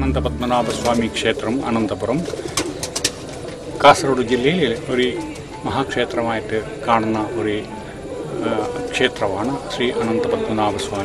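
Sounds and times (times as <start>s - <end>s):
man speaking: 0.0s - 2.4s
pigeons cooing: 0.6s - 11.0s.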